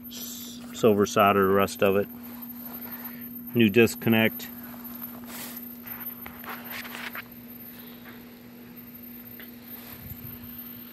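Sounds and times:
steady low hum: 0.0s - 10.9s
footsteps on gravel: 4.6s - 7.3s.

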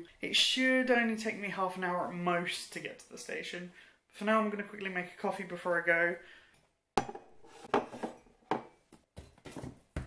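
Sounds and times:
ceramic mug knocking on worktop: 7.0s - 8.7s.

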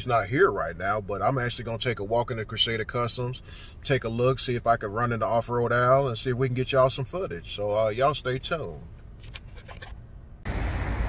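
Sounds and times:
low outdoor rumble: 0.0s - 11.0s
low rumble inside car: 0.0s - 11.0s.

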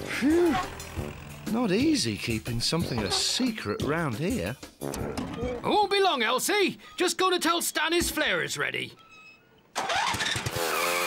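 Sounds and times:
vehicle engine starting and running: 9.8s - 11.0s.

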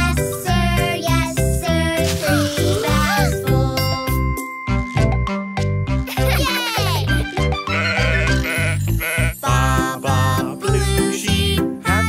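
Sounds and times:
bouncy children's song music: 0.0s - 12.0s
cartoon sheep bleating: 7.6s - 9.7s.

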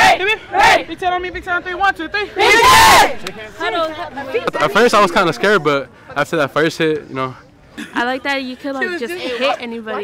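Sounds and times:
loud group shout: 0.0s - 0.9s, 2.4s - 3.4s.

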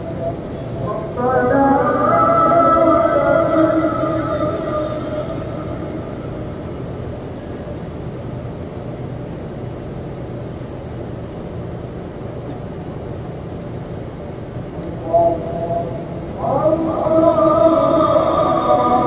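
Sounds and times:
prayer chanting over loudspeakers: 0.0s - 6.9s, 14.8s - 19.0s
low background rumble: 0.0s - 19.0s.

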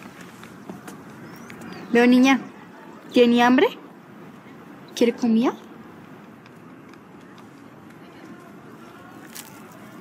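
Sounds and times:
low outdoor background: 0.0s - 10.0s.

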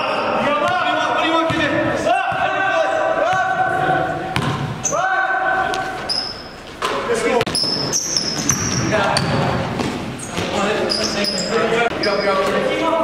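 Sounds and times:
basketball bouncing on gym floor: 0.6s - 2.6s, 4.3s - 4.8s, 6.8s - 10.7s
sneakers squeaking: 3.2s - 12.9s.

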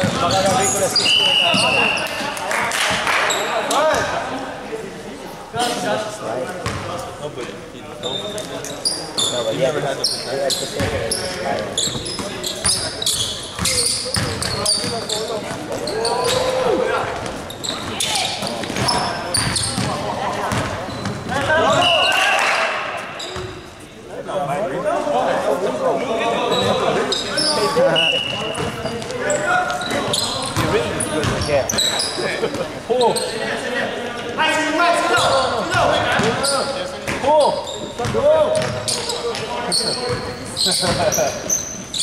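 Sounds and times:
sneakers squeaking: 0.0s - 4.3s, 6.6s - 7.2s, 8.0s - 24.0s, 26.3s - 34.3s, 35.0s - 42.0s
players calling out: 8.1s - 23.8s
basketball bouncing on hardwood: 18.7s - 21.5s.

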